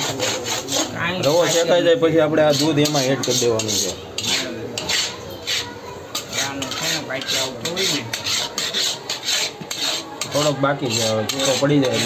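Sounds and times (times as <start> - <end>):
metal spatula scraping a pan: 0.0 - 12.0.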